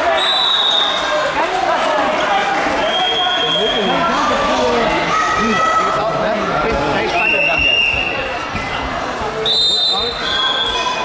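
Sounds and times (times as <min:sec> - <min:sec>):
referee whistle: 0:00.0 - 0:01.0, 0:02.8 - 0:04.0, 0:09.4 - 0:11.0
many overlapping voices: 0:00.0 - 0:11.0.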